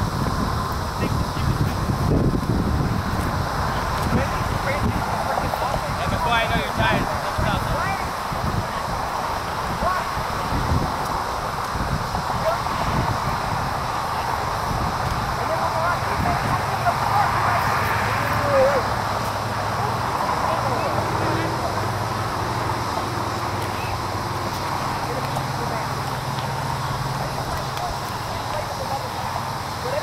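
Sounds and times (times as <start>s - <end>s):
distant voices calling: 0.6s - 30.0s.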